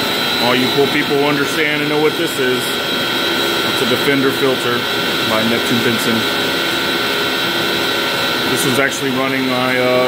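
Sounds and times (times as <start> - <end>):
electric water pumps whining: 0.0 - 10.0.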